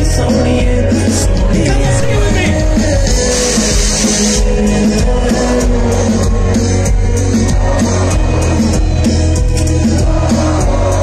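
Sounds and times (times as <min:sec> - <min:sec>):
live hip-hop music: 0:00.0 - 0:11.0
high hissing noise: 0:03.0 - 0:04.7.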